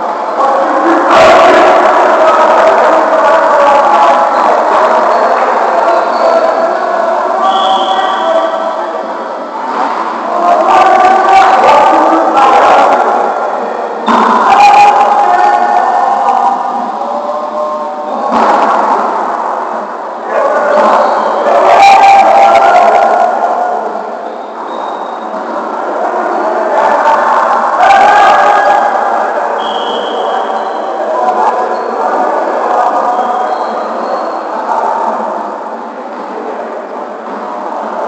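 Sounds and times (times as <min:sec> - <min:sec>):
players shouting in gymnasium: 0:00.2 - 0:38.0.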